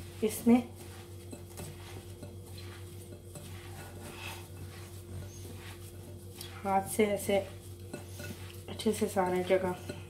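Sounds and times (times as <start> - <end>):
squishing of kneaded mixture: 0.0 - 10.0
steady low hum: 0.0 - 10.0.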